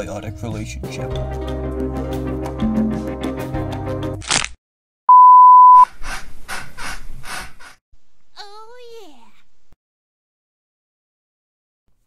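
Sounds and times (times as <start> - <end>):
music: 0.0 - 4.2
loud bleep tone: 5.1 - 5.8.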